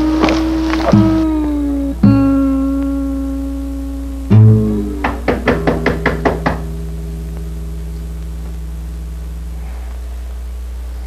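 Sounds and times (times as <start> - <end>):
steady low hum: 0.0 - 11.0
rapid knocking on door: 5.0 - 6.7.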